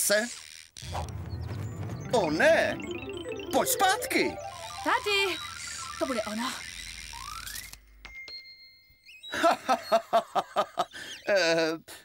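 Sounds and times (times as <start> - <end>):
held high tone: 1.1 - 6.1.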